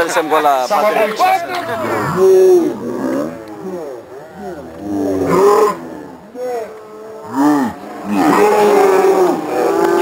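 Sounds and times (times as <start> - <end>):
men shouting: 0.7 - 10.0.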